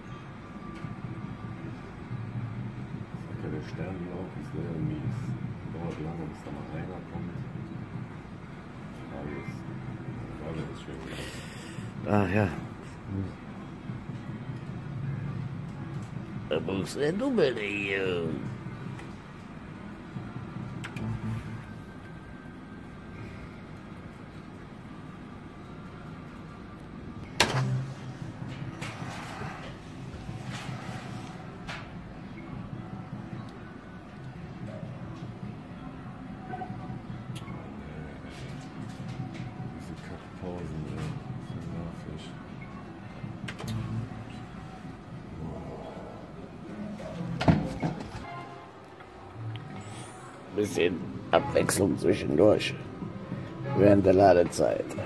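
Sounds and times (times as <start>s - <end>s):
low hum: 18.4s - 31.5s.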